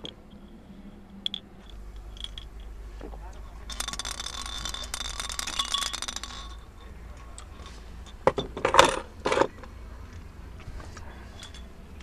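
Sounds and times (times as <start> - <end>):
glass bottle clinks and knocks: 1.2 - 2.7, 3.6 - 6.7, 7.6 - 9.0.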